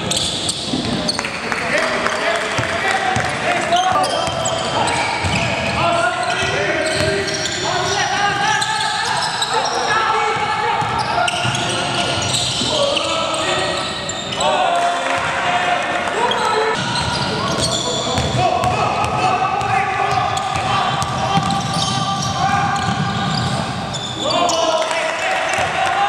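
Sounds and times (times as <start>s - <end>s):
sneakers squeaking: 0.0s - 25.0s
players calling out: 0.0s - 26.0s.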